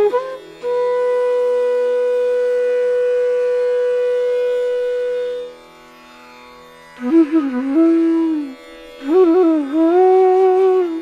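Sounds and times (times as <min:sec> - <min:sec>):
bamboo flute long note: 0:00.0 - 0:05.6, 0:07.0 - 0:11.0.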